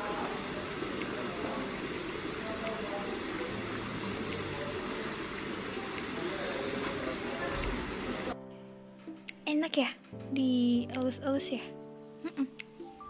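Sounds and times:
fountain water pouring into pond: 0:00.0 - 0:08.4.

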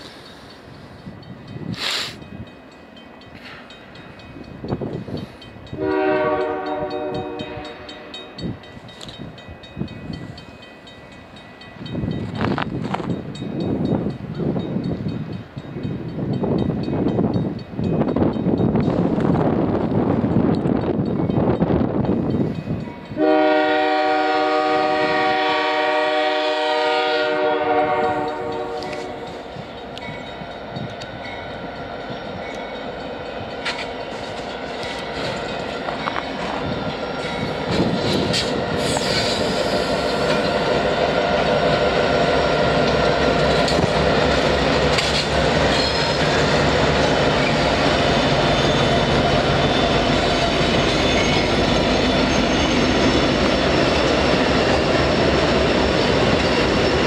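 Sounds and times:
train rumbling: 0:00.0 - 0:57.0
locomotive air horn: 0:05.8 - 0:08.1, 0:23.2 - 0:29.3.

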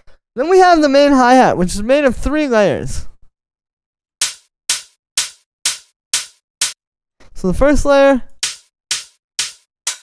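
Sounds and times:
electronic hi-hat hits: 0:04.2 - 0:06.8, 0:08.4 - 0:10.0.

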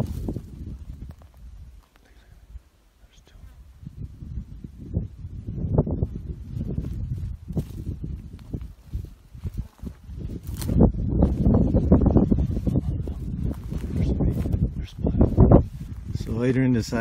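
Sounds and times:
rustling in dry brush: 0:00.0 - 0:02.6, 0:03.6 - 0:17.0
wind buffeting microphone: 0:00.0 - 0:17.0.

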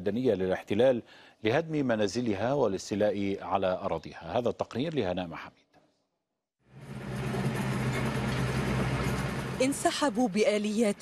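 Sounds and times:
diesel engine droning: 0:06.7 - 0:10.2.

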